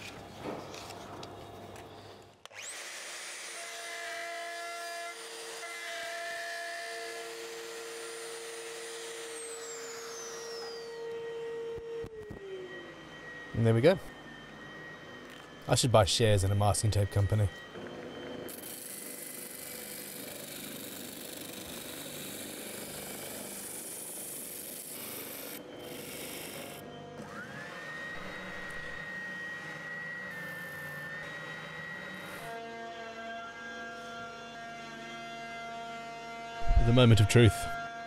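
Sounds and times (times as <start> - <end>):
motor whine: 7.1 - 38.0
steady motor hum: 7.1 - 38.0.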